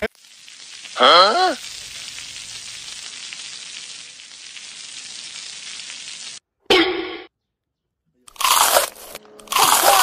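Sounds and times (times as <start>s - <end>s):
oil sizzling on hot stone: 0.0s - 6.4s.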